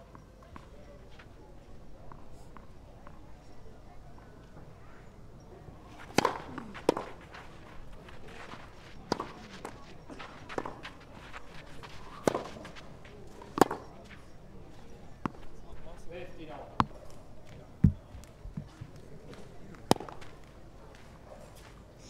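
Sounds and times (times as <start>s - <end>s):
tennis ball hit and bouncing: 5.9s - 14.3s, 15.2s - 15.8s, 16.7s - 17.2s, 19.4s - 20.3s.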